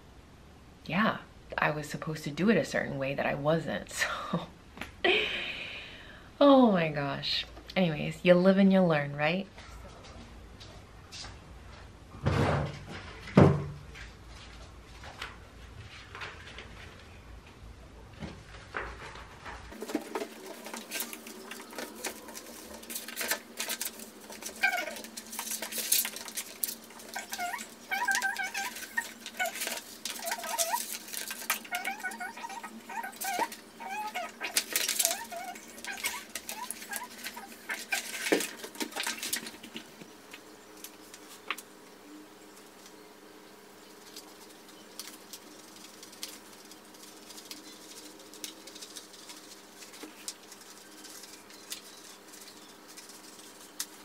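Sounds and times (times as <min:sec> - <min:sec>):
low steady hum: 0:00.0 - 0:54.0
plastic film crackling and rustling: 0:18.5 - 0:41.8, 0:43.8 - 0:54.0.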